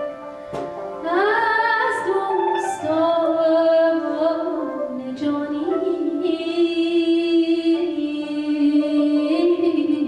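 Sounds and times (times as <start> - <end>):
woman singing: 1.0 - 10.0.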